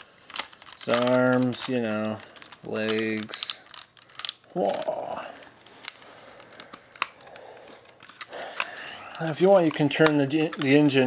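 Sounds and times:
plastic toy parts clicking: 0.0 - 5.0, 5.6 - 11.0.

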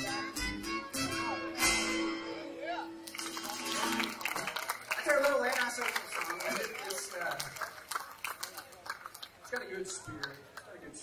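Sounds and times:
audience clapping: 3.0 - 11.0
audience voices: 3.0 - 11.0.

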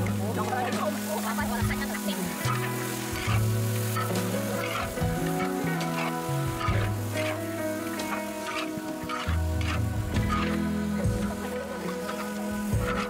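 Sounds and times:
meat sizzling in a wok: 0.0 - 13.0
music with slow bass line: 0.0 - 13.0.

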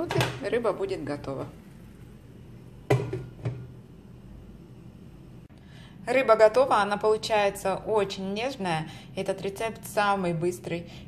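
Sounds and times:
glass lid knocking on frying pan: 2.9 - 3.7.

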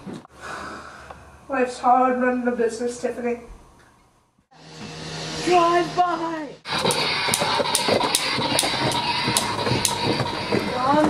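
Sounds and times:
steady rushing noise: 4.6 - 11.0.

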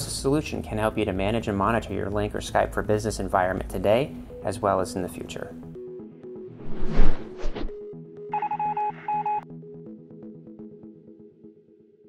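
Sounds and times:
electronic telephone-like beeps: 8.3 - 9.4.

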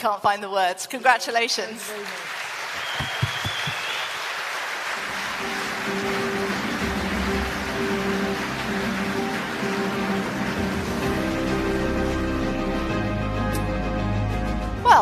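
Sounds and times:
audience applauding: 1.7 - 12.4
ceremony music: 4.9 - 15.0.

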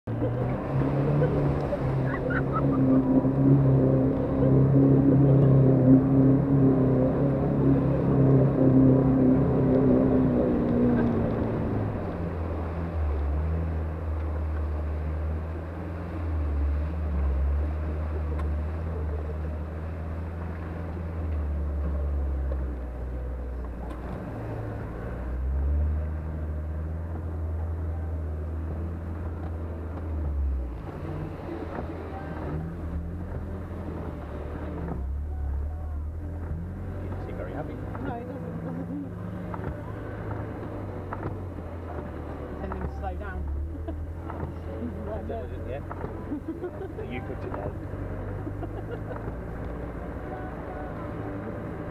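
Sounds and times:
off-road vehicle engine revving: 0.0 - 51.9.

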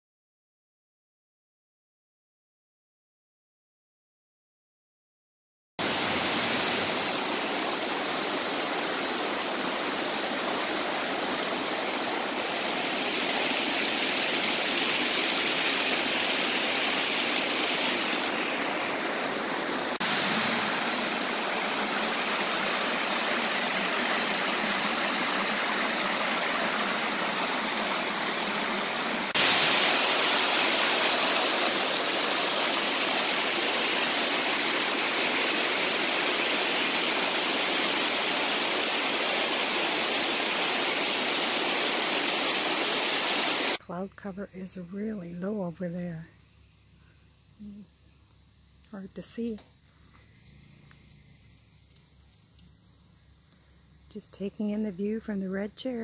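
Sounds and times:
stream rushing over rocks: 5.8 - 43.8.

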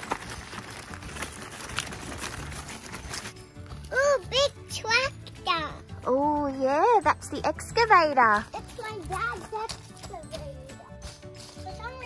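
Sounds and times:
wheels crunching on gravel: 0.0 - 4.2.

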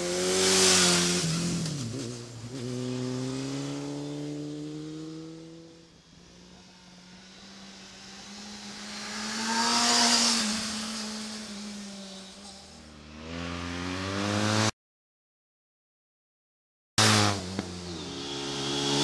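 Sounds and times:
motorcycle engine passing: 0.0 - 14.7, 17.0 - 19.0.

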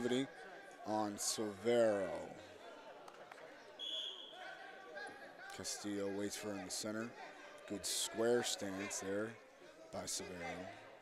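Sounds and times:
referee's whistle blast: 3.8 - 4.4.

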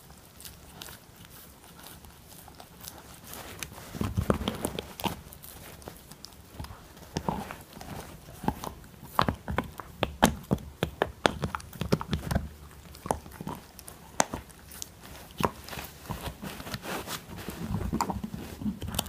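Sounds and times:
puppy gnawing a chew bone: 0.0 - 19.0.

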